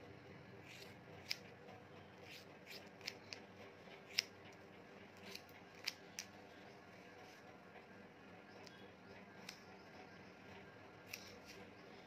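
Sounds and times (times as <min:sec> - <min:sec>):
scissors snipping hair: 0:00.6 - 0:01.5, 0:02.2 - 0:04.6, 0:05.2 - 0:06.4, 0:09.4 - 0:09.7, 0:11.1 - 0:11.7.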